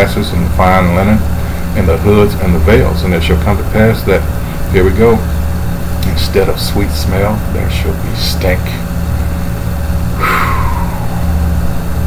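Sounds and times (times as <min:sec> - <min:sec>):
low electrical hum: 0:00.0 - 0:12.0
breathy sound falling in pitch: 0:10.2 - 0:11.8.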